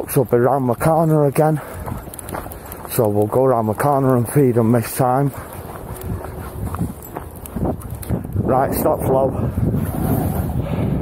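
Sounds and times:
footsteps on grass: 0:01.1 - 0:08.2.

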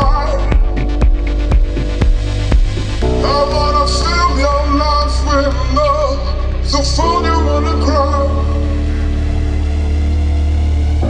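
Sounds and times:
deep bass drone: 0:00.0 - 0:11.0.

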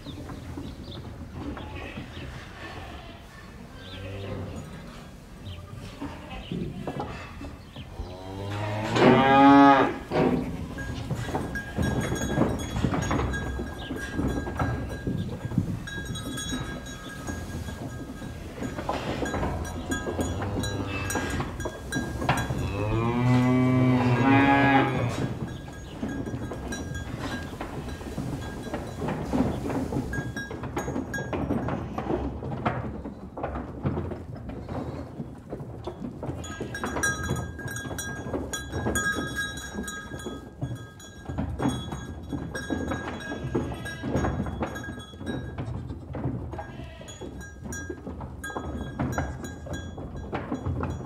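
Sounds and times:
cattle mooing: 0:07.9 - 0:10.1, 0:19.1 - 0:21.7, 0:22.4 - 0:25.4
scattered knocks: 0:08.8 - 0:51.0.

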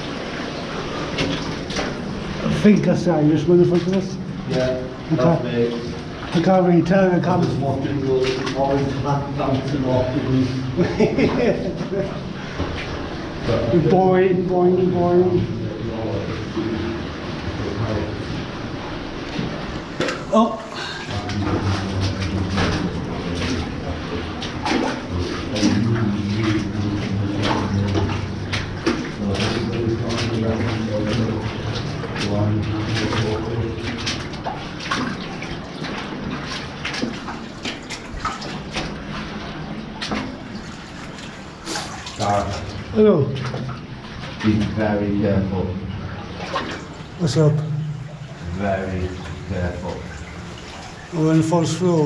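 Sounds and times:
boots splashing through water: 0:00.0 - 0:14.0, 0:14.9 - 0:52.0.

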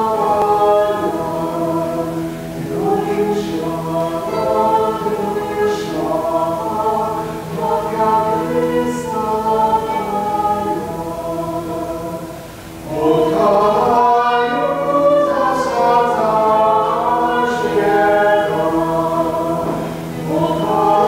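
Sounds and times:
man and woman singing: 0:00.0 - 0:21.0
mandolin: 0:00.0 - 0:21.0.

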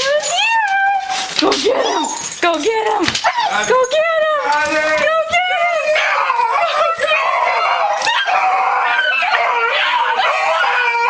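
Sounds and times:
dog whining and yelping: 0:00.0 - 0:02.4, 0:05.4 - 0:11.0.

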